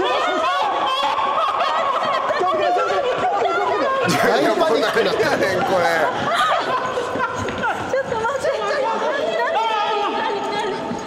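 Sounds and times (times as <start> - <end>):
people screaming in panic: 0.0 - 4.6.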